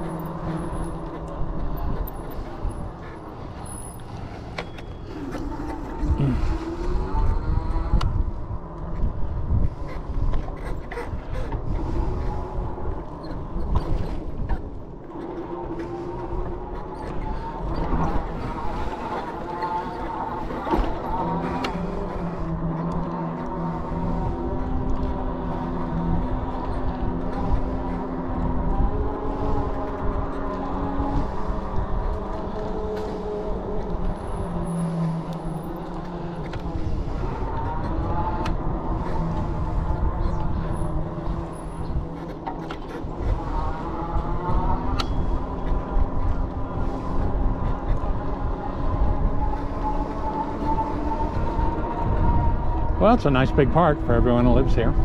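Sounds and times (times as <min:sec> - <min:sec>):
electric bike motor whining: 0:00.0 - 0:55.0
wind rumble on microphone: 0:00.0 - 0:55.0.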